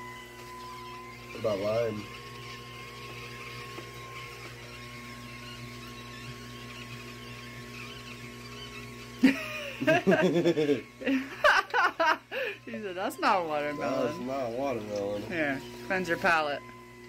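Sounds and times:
appliance electrical hum: 0.0 - 17.0.

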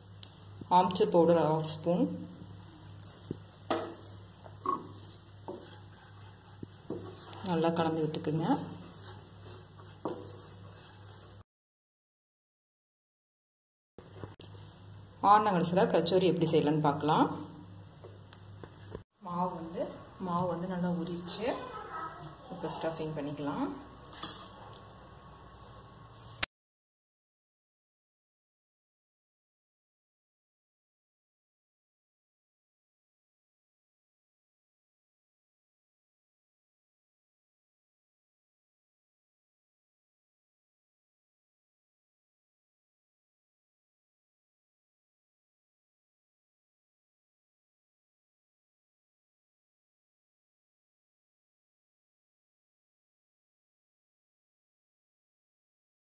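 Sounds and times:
wooden spoon scraping a pan: 3.2 - 11.4.

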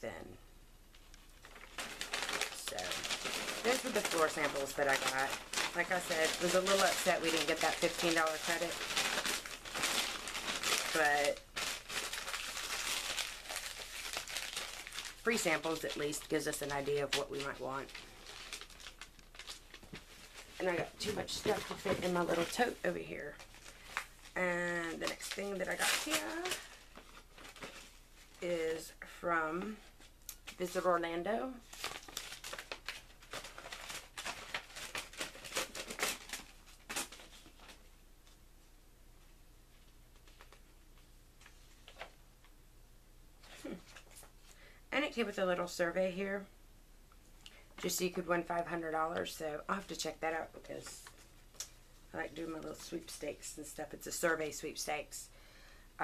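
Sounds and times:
packaging rustling and crinkling: 0.9 - 28.5, 31.6 - 38.4, 39.7 - 42.2.

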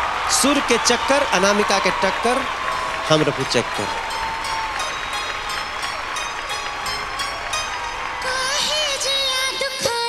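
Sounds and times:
audience applauding: 0.0 - 10.0
steady musical beat: 2.5 - 9.4.

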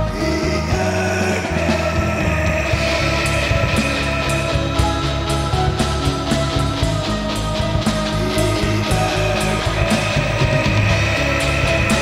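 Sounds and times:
distorted electric guitar: 0.0 - 12.0
drum and cymbal strokes: 0.0 - 12.0
low sustained bass: 0.0 - 12.0.

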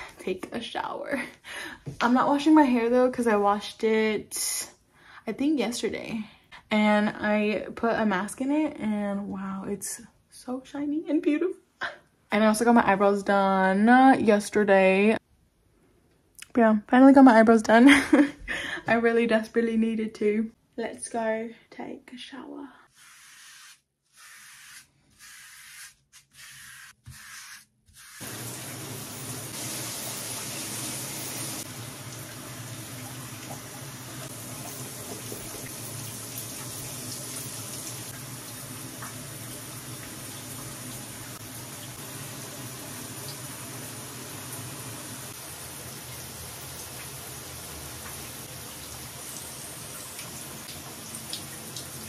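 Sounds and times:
shower water running: 23.0 - 52.0.

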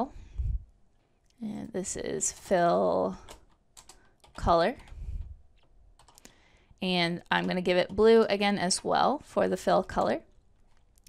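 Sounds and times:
computer keyboard keystrokes: 3.2 - 6.4.

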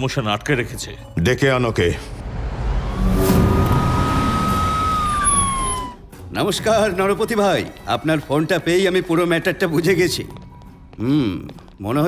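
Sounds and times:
siren tone: 2.4 - 6.2.

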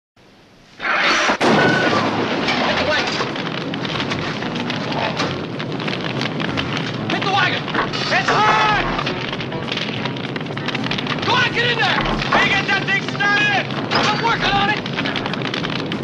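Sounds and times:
fire crackling: 0.2 - 16.0
loud burst: 0.7 - 16.0.

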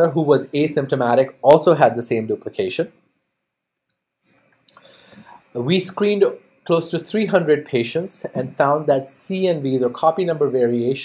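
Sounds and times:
low noise: 0.0 - 11.0.

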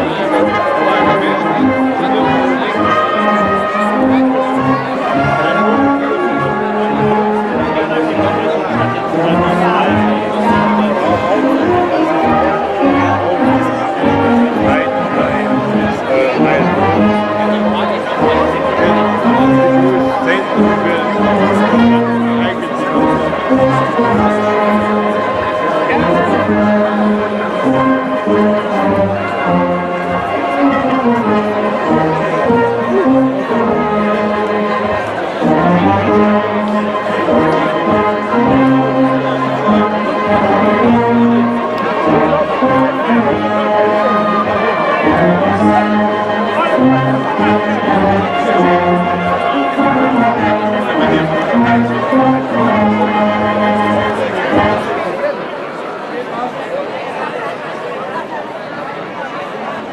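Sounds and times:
brass band music: 0.0 - 55.4
crowd chatter: 0.0 - 59.9.

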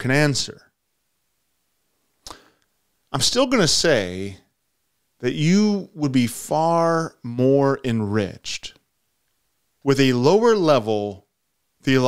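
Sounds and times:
quick in-breath: 2.2 - 2.7.

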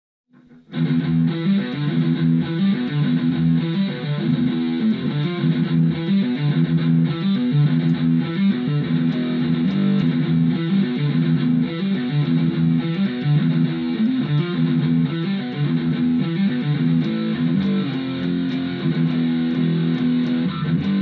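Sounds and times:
electric guitar heavy metal riffs: 0.4 - 21.0.

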